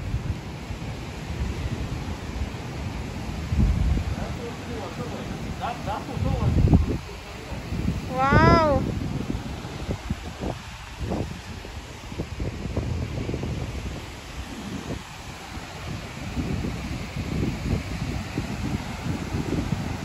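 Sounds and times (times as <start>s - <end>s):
heavy surf: 0.0s - 20.0s
wind buffeting microphone: 0.0s - 20.0s.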